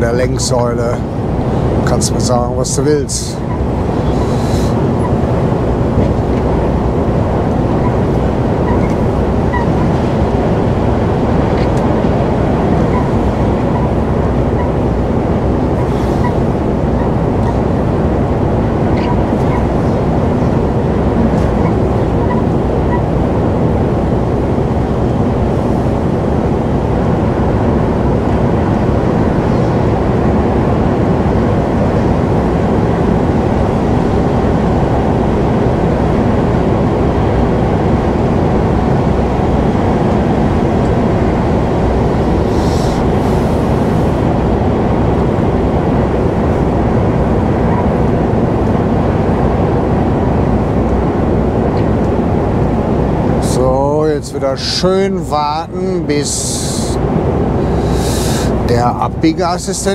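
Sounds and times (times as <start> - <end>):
truck engine drone in cab: 0.0 - 59.9
tyres on wet road: 57.6 - 58.6.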